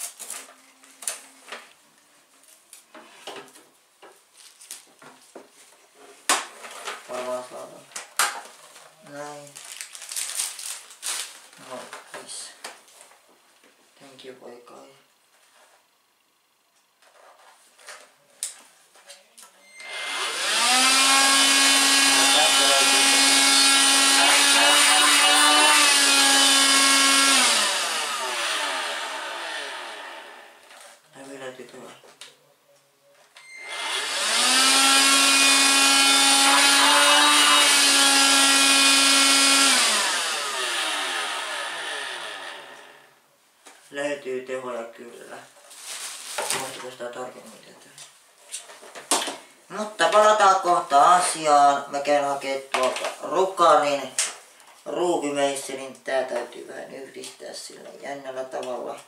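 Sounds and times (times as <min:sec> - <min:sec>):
vacuum cleaner motor whine: 0:19.6 - 0:30.7, 0:33.4 - 0:43.1.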